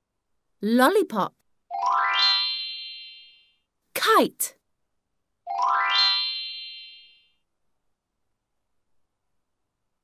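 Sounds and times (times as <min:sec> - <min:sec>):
rising electronic chime: 0:05.5 - 0:07.3.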